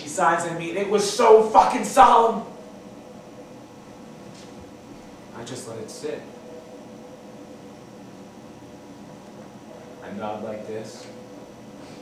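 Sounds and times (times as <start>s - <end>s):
even room hiss: 0.0s - 12.0s
faint air conditioning hum: 0.0s - 12.0s.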